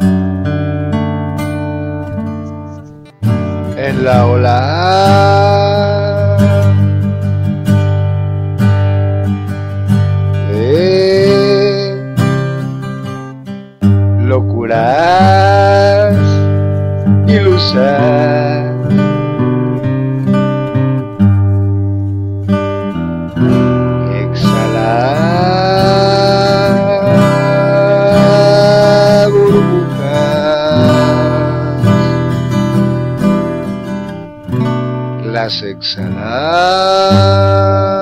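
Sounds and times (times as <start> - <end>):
strummed acoustic guitar: 0.0 - 38.0
person singing long notes: 3.6 - 6.8, 10.4 - 12.2, 14.2 - 16.6, 17.2 - 19.0, 24.0 - 32.5, 35.2 - 38.0.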